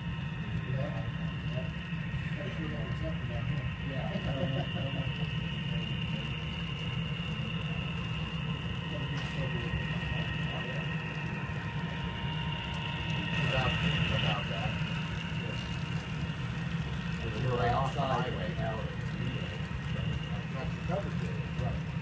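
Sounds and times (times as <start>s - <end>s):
model train hum and whine: 0.0s - 22.0s.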